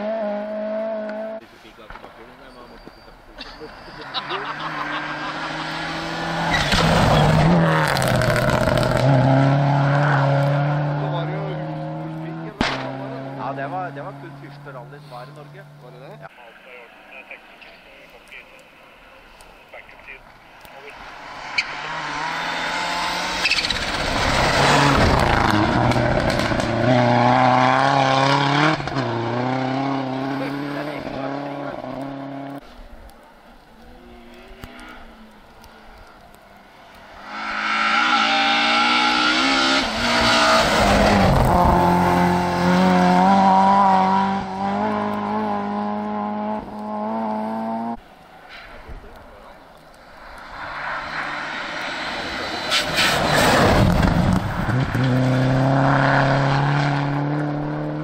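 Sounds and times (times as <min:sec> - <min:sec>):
rally car engines revving past: 0:00.0 - 0:16.3, 0:20.5 - 0:32.8, 0:34.0 - 0:48.9, 0:49.7 - 0:58.0.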